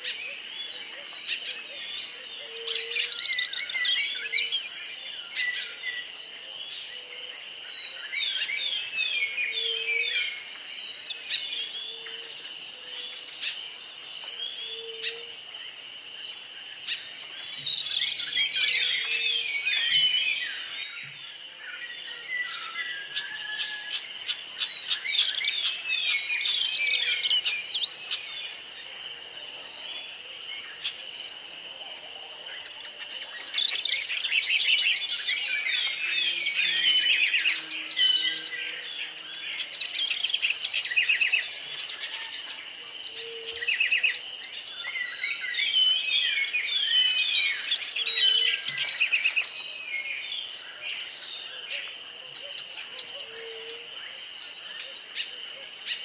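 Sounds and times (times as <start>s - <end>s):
birds singing: 0.0s - 56.0s.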